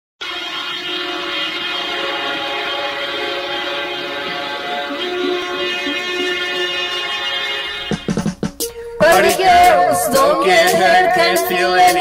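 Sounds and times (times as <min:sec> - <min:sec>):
sustained drone of held tones: 0:00.2 - 0:08.2.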